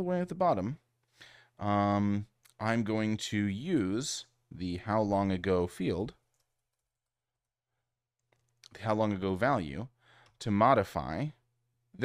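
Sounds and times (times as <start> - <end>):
computer keyboard typing clicks: 8.2 - 8.7.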